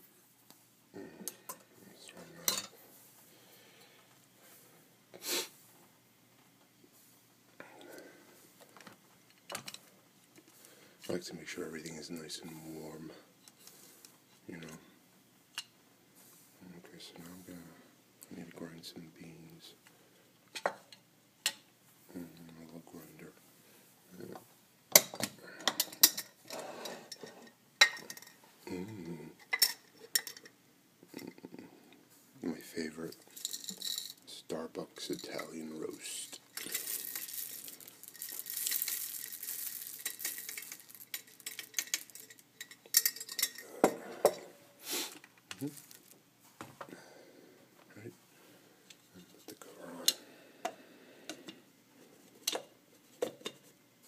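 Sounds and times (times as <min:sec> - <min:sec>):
coffee beans poured into grinder: 0:36.0 - 0:42.4, 0:45.6 - 0:46.2
glass jars clinking: 0:36.6 - 0:44.5.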